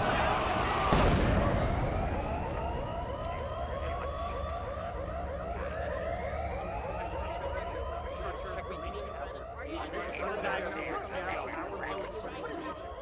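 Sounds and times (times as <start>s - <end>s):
warbling siren-like tone: 0.0s - 13.0s.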